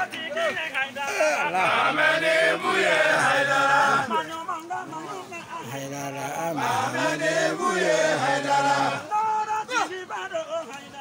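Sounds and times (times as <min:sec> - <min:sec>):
group of voices chanting: 0:01.1 - 0:04.2, 0:06.3 - 0:09.1.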